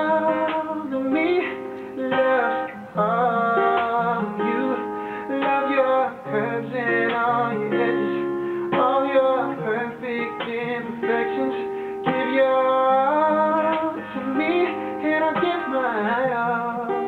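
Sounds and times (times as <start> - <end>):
man singing a slow ballad: 0.0 - 17.0
picked acoustic guitar: 0.0 - 17.0.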